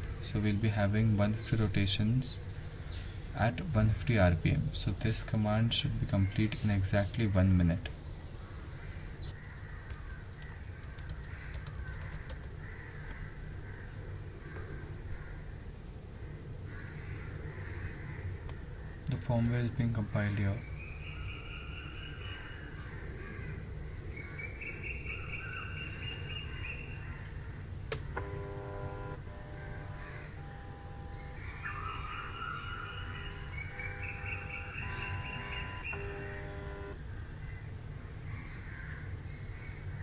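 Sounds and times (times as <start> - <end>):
low steady hum: 0.0 - 40.0
stepper motor whining: 27.9 - 37.0.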